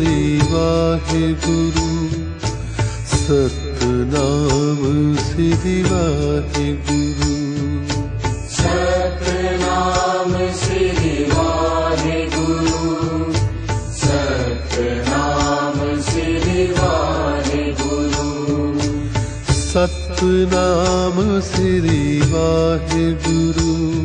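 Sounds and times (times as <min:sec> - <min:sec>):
voices singing devotional melody: 0:03.4 - 0:23.7
drum strokes: 0:08.5 - 0:19.8.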